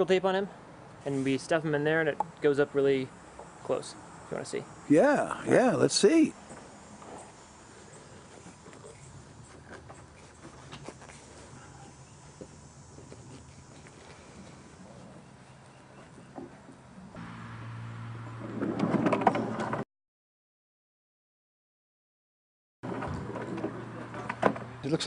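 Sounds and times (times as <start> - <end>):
wheels rolling on pipe rails: 18.4 - 19.8.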